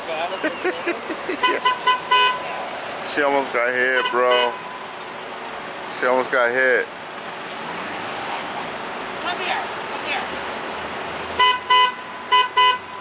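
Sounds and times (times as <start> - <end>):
bus horn short toots: 1.4 - 2.4, 4.0 - 4.8, 11.4 - 13.0.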